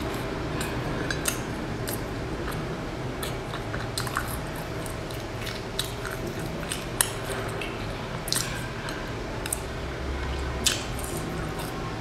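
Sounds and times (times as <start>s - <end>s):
wet chewing mouth sounds: 0.0s - 11.9s
sharp crackles of food: 10.4s - 12.0s.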